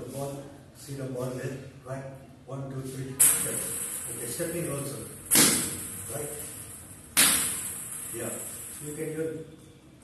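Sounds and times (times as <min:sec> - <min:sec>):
table tennis racket striking ball: 0:03.2 - 0:04.3, 0:05.1 - 0:08.8.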